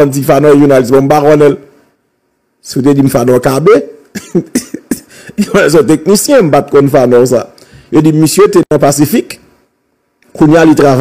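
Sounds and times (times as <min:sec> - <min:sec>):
man speaking: 0:00.0 - 0:01.7, 0:02.6 - 0:09.4, 0:10.3 - 0:11.0.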